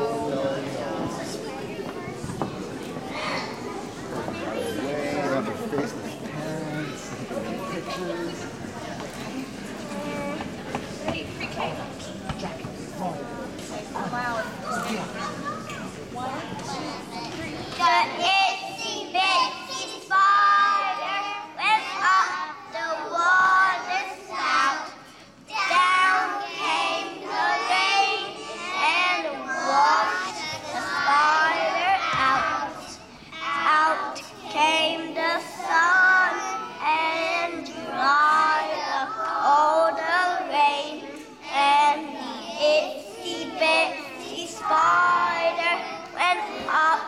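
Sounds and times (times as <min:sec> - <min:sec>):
children singing in unison: 0:17.7 - 0:47.0.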